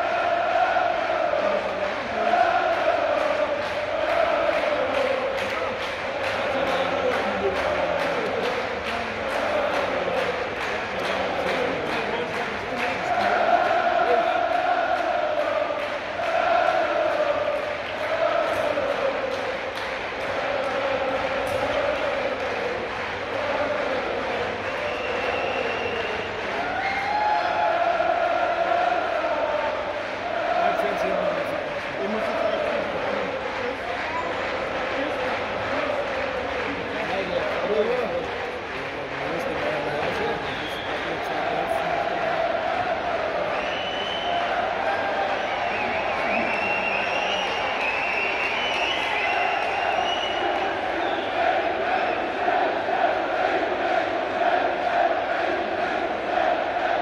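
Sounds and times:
crowd singing a chant: 0.0s - 57.0s.

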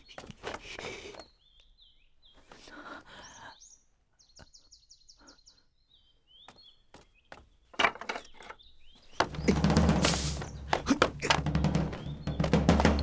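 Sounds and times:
small birds chirping: 0.0s - 13.0s
bird trill: 8.2s - 13.0s.

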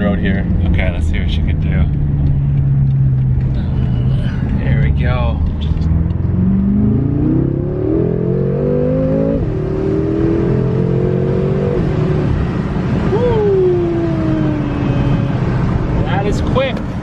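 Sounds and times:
car engine accelerating: 0.0s - 17.0s.

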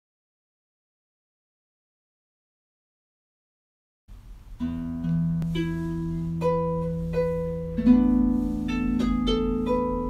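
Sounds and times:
harp music: 4.5s - 10.0s.

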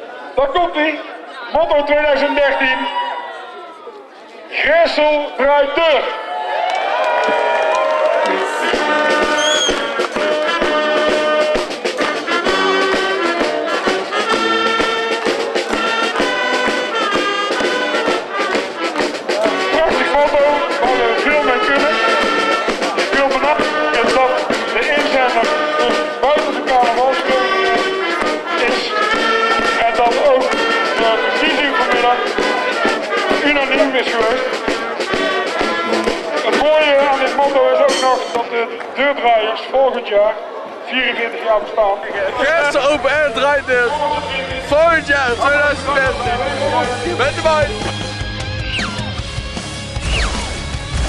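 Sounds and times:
brass band playing: 7.4s - 38.8s, 42.3s - 51.0s.

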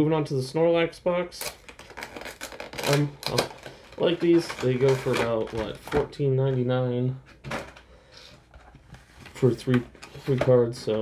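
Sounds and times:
person speaking: 2.8s - 7.3s, 9.3s - 11.0s.

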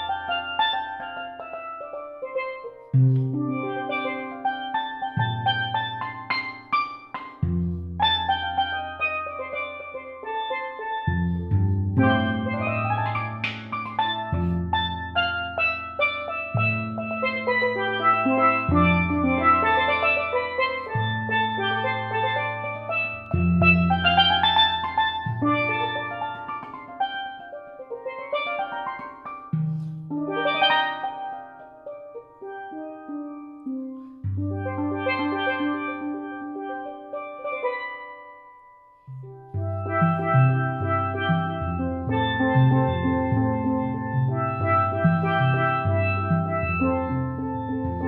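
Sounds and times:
steelpan improvisation: 0.0s - 48.0s.

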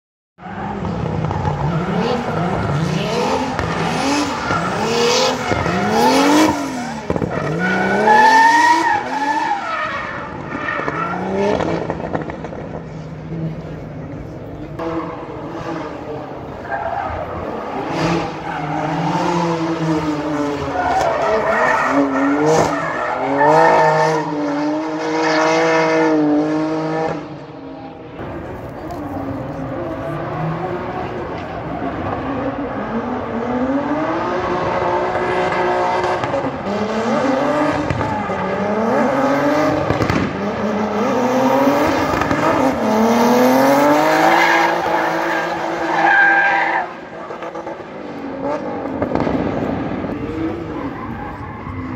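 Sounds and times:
car engines revving hard: 0.4s - 51.9s.

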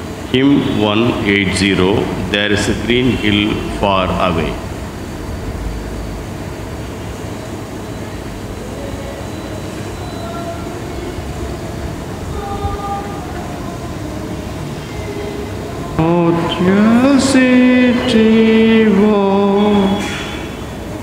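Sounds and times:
low rumble of congregation standing: 0.0s - 8.9s, 10.3s - 21.0s.

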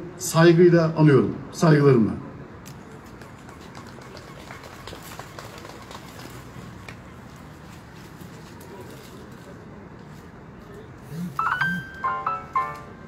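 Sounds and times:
outdoor background noise: 0.0s - 13.0s.

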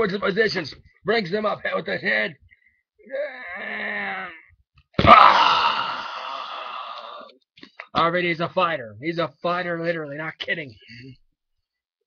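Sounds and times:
breathy vocal haaah: 3.0s - 7.3s.

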